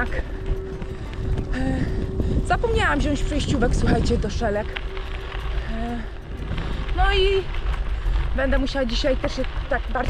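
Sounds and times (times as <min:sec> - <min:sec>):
steady low rumble: 0:00.0 - 0:10.0
woman speaking: 0:02.4 - 0:04.7, 0:06.9 - 0:07.6, 0:08.3 - 0:10.0.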